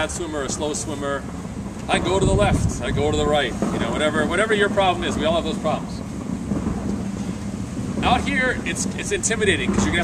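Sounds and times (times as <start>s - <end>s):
steady hiss: 0.0s - 10.0s
wind rumbling on microphone: 0.0s - 10.0s.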